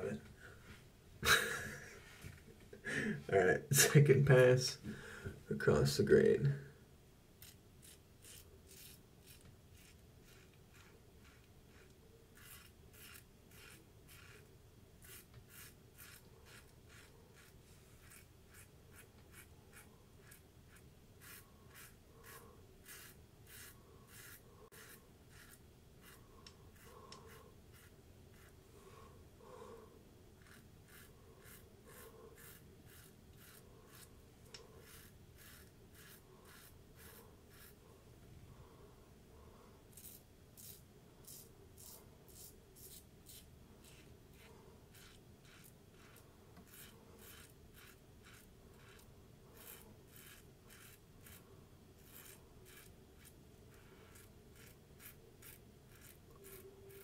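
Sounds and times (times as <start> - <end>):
razor scraping stubble: 7.4 - 28.6, 30.4 - 37.8, 39.9 - 57.0.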